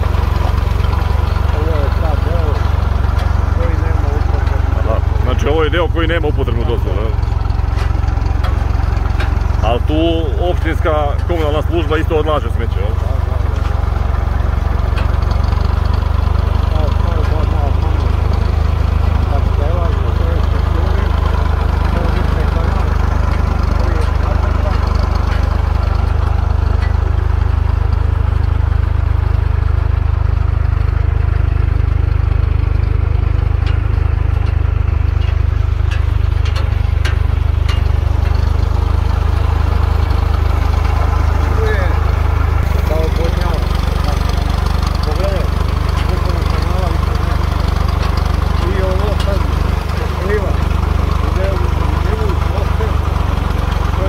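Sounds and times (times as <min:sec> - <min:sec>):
engine running with low drone: 0:00.0 - 0:54.0.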